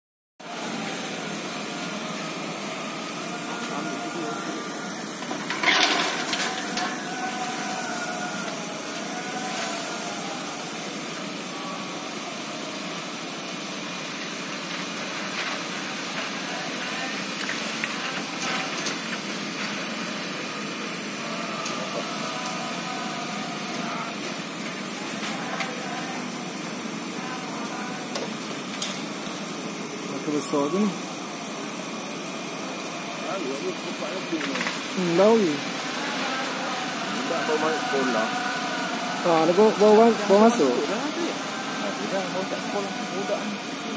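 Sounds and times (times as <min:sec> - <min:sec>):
faint voices: 0:00.4 - 0:43.9
fire cracking and popping: 0:17.3 - 0:20.0.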